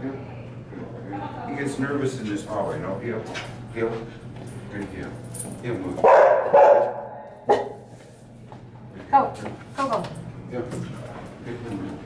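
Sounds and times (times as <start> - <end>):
dog barking sharply: 6.0 - 7.9.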